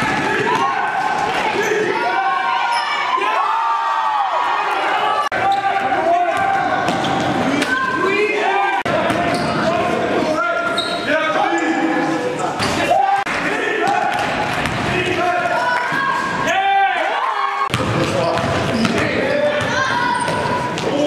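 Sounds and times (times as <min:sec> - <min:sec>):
sneakers squeaking: 0:00.0 - 0:03.2, 0:05.3 - 0:08.2, 0:08.9 - 0:13.0, 0:17.7 - 0:21.0
players' voices echoing: 0:00.0 - 0:21.0.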